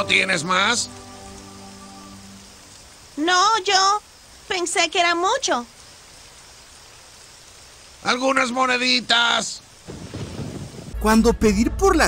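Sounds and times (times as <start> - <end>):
faint steady rain: 0.0 - 12.0.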